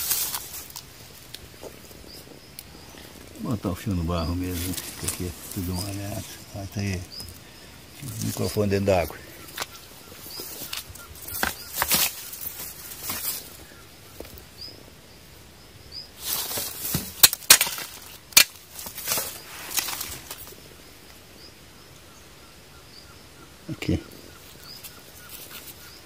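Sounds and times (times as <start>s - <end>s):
rustling through wet grass: 0.0s - 14.8s, 16.1s - 20.9s.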